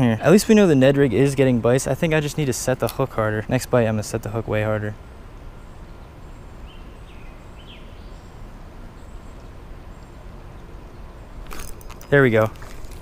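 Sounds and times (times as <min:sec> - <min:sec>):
outdoor background noise: 0:00.0 - 0:13.0
bird chirping: 0:00.2 - 0:13.0.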